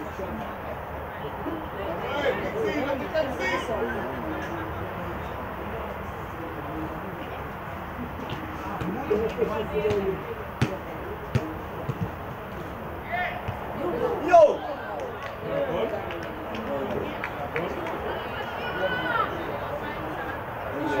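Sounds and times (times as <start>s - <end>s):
players shouting: 11.4s - 16.1s, 16.8s - 21.0s.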